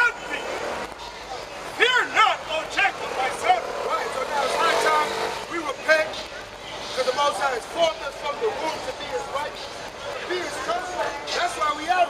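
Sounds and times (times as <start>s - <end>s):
loud voices calling out: 0.0s - 12.0s
vehicle engine passing: 2.9s - 5.7s.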